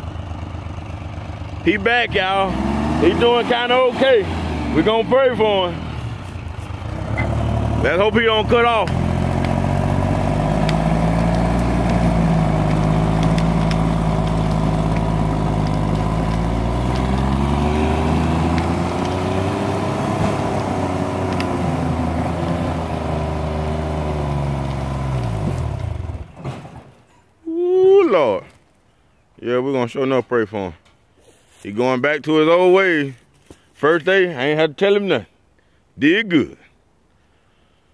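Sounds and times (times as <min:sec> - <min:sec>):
diesel engine running under load: 0:00.0 - 0:26.9.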